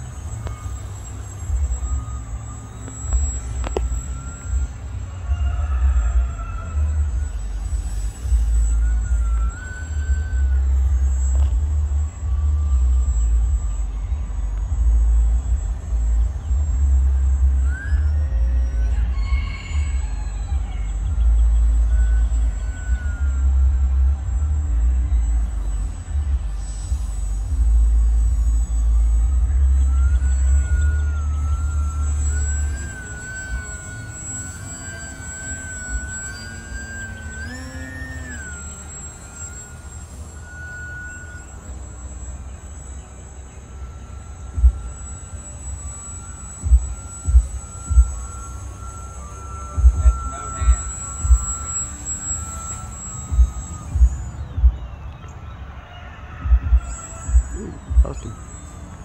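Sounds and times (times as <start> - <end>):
heavy low rumble: 0.0 - 55.8, 56.4 - 59.0
model plane motor whine: 0.0 - 59.0.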